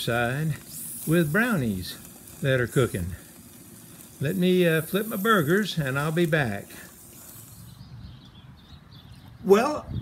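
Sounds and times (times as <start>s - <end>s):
high hiss: 0.0s - 8.1s.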